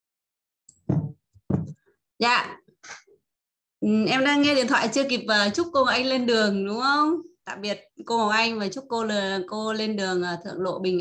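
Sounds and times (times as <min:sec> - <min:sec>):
sharp knocks: 0:00.8 - 0:01.8.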